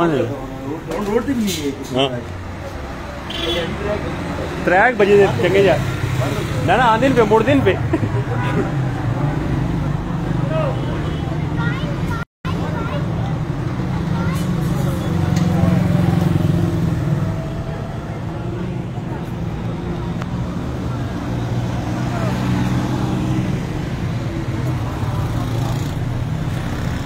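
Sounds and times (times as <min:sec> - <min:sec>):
traffic hum: 0:00.0 - 0:27.0
motorcycle engines passing: 0:01.9 - 0:27.0.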